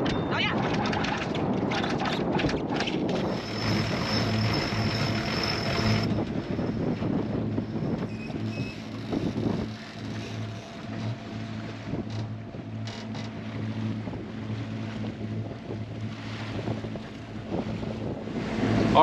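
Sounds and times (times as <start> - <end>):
boat engine running: 0.0 - 19.0
water noise: 0.0 - 19.0
wind: 0.0 - 19.0
anchor winch whine and hiss: 3.3 - 6.1.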